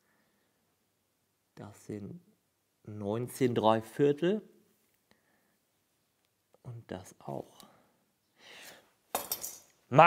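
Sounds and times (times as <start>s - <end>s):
light metallic clinks: 9.1s - 9.8s.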